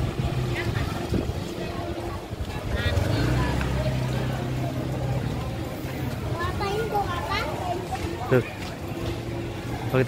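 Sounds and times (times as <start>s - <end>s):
motor scooters riding past: 0.0s - 9.9s
scattered voices: 0.0s - 10.0s.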